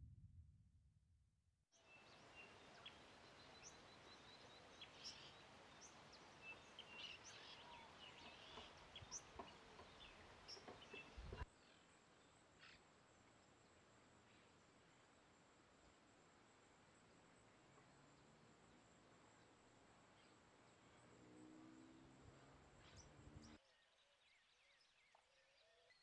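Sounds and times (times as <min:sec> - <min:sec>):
outdoor background hiss: 0:01.8 - 0:26.0
songbirds chirping: 0:01.8 - 0:26.0.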